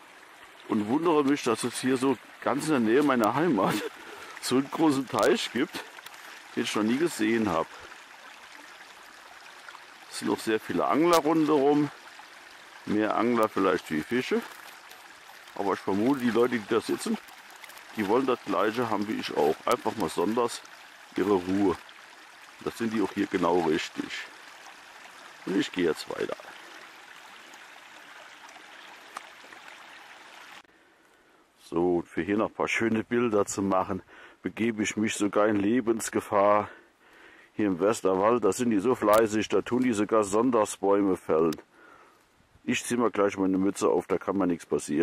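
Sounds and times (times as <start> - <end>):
brook running water: 0.0 - 45.0.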